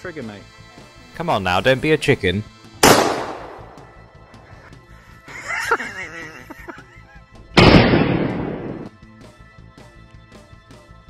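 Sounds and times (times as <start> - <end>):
gunshot echo: 2.8 - 4.3, 7.6 - 9.0.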